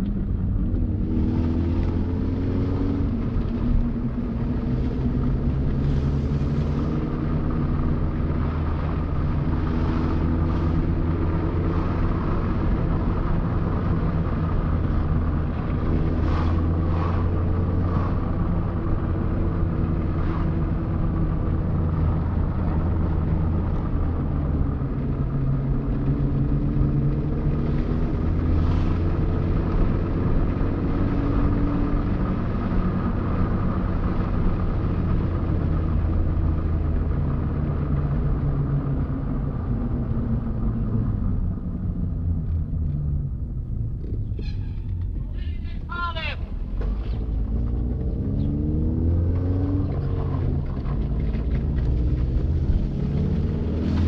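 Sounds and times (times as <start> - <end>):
car engine and tyre drone: 0.0 - 54.0.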